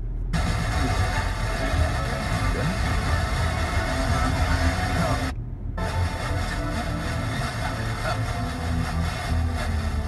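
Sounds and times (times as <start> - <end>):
car radio programme: 0.4 - 10.0.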